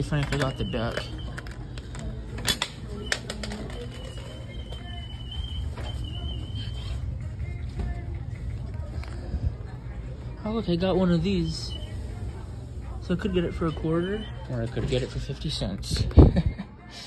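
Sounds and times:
steady low hum: 4.2s - 14.4s.

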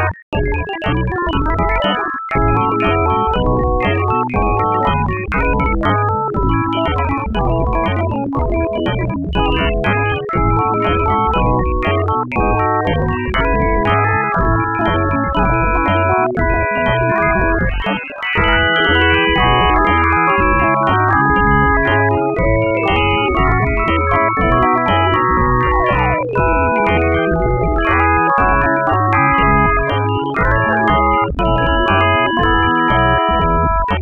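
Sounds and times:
dense organ-like keyboard chords: 0.0s - 34.0s.

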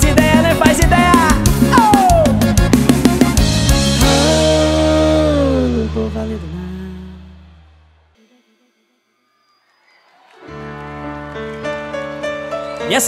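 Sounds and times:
band opening chords: 0.0s - 7.8s.

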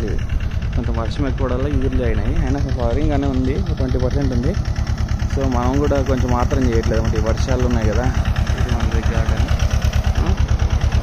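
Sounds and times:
man talking: 0.0s - 4.7s, 5.3s - 9.6s
engine running steadily: 0.0s - 11.0s.

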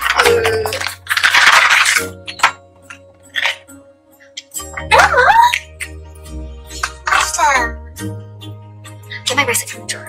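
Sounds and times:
paper gift bag rustling: 0.0s - 2.4s
soft background music: 0.0s - 10.0s.

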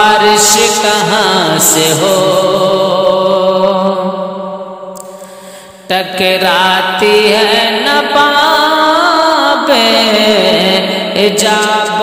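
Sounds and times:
man singing: 0.0s - 4.3s, 5.9s - 12.0s.

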